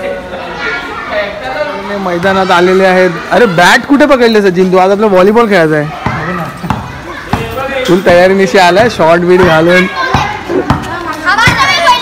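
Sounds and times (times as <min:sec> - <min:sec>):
ball bouncing on tiled floor: 0:06.0 - 0:11.9.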